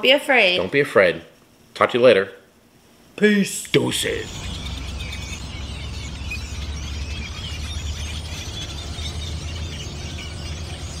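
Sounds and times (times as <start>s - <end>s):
flock of birds chattering: 3.7s - 11.0s
steady low rumble: 3.7s - 11.0s.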